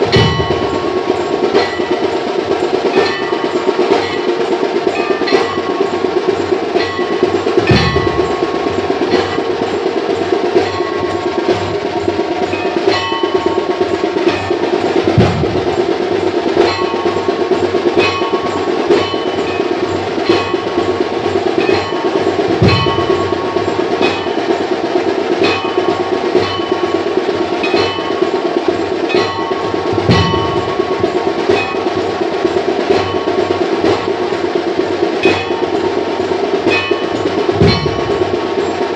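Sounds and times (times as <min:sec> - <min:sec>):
fast steady drumming: 0:00.0 - 0:38.9
metal bell ringing: 0:00.0 - 0:38.9.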